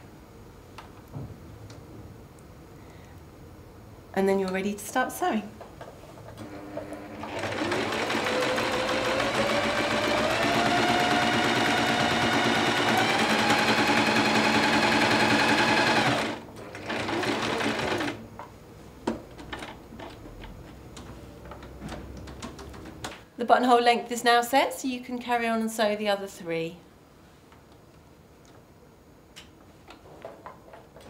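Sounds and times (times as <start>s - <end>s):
sewing machine motor whine: 6.4s - 18.2s.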